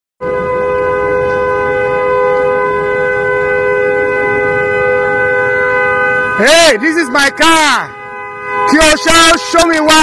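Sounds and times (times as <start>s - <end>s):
car horn two-note chord: 0.2s - 6.5s, 7.2s - 10.0s.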